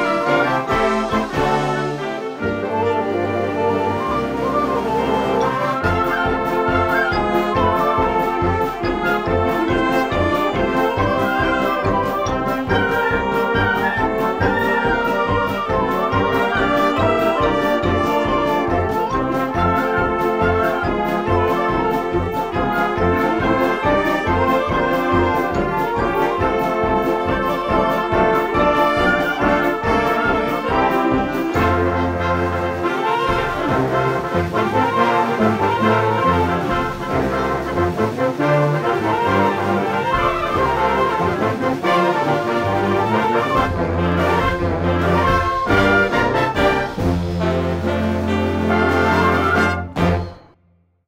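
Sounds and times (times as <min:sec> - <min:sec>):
concert band playing: 0:00.0 - 0:50.5.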